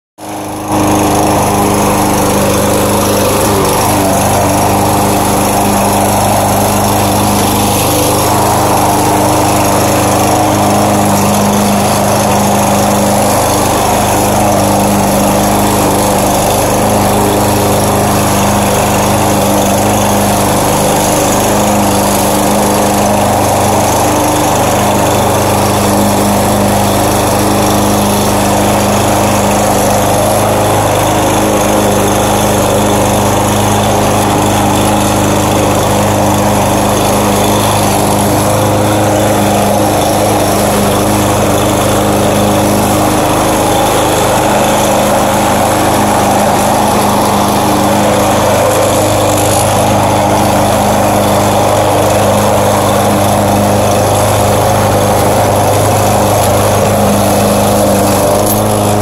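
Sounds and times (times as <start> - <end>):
lawn mower engine running: 0.2 - 59.0.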